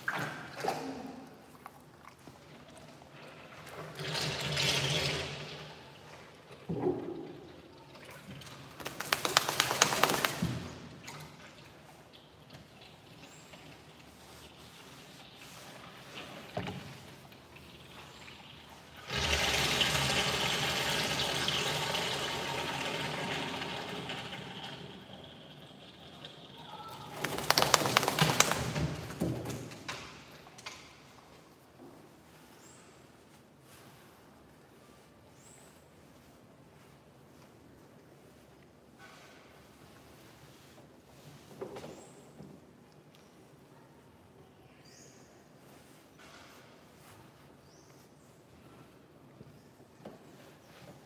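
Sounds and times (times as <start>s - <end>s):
water splashing in a bath: 0.0s - 30.7s
wet dog shaking itself: 8.7s - 10.8s, 26.9s - 29.7s.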